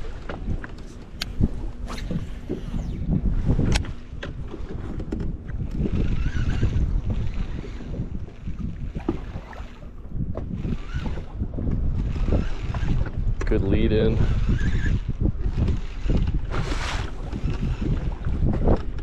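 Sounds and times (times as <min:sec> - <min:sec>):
water slapping boat hull: 0:00.0 - 0:19.0
wind buffeting microphone: 0:00.0 - 0:19.0.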